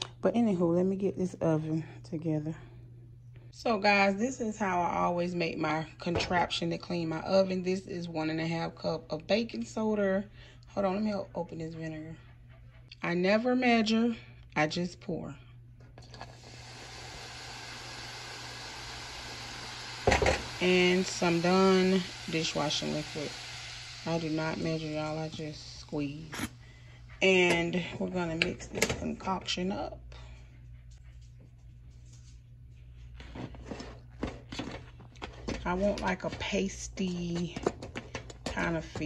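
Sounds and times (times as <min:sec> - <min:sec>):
spoon scraping plastic tub: 0:16.0 - 0:16.4
mixture fizzing: 0:16.0 - 0:26.5.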